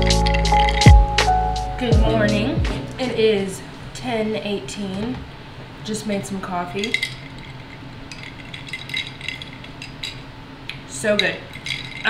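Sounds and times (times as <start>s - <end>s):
ice clinking in glass jar: 6.8s - 10.2s, 11.1s - 12.0s.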